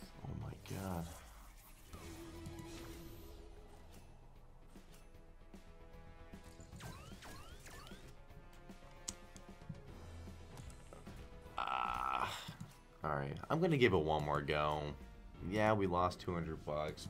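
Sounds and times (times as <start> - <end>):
background game music: 0.0 - 17.0.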